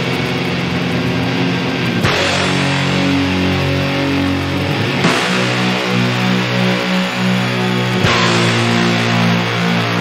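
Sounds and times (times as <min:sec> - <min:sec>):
fuzzed electric guitar drone: 0:00.0 - 0:10.0.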